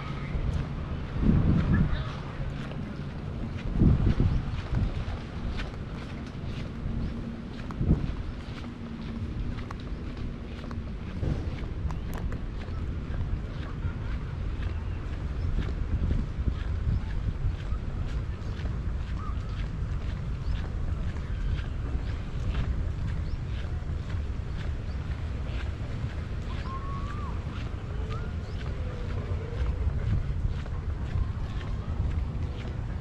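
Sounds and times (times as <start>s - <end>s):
wind buffeting microphone: 0.0s - 33.0s
footsteps on paving: 0.1s - 33.0s.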